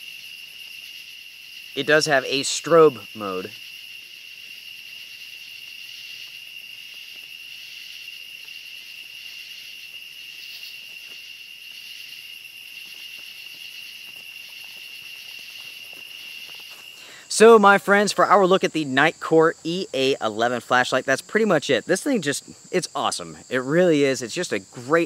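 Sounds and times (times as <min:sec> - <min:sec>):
crickets and night insects trilling: 0:00.0 - 0:25.0.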